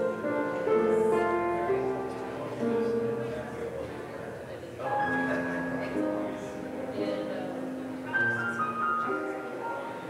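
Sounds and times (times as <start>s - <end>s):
solo piano playing slowly: 0.0s - 10.0s.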